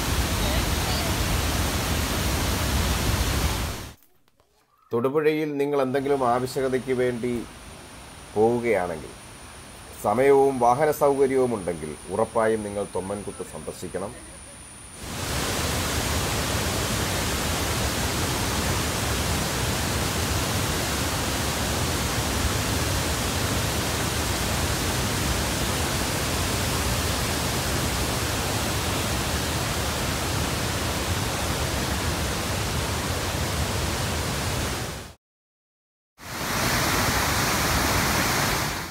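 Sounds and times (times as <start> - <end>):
waterfall rushing water: 0.0 - 4.0, 15.0 - 35.2, 36.2 - 38.9.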